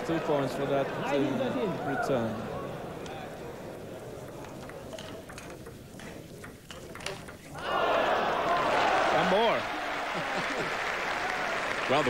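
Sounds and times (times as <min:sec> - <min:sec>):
table tennis ball clicks: 0:04.1 - 0:07.6.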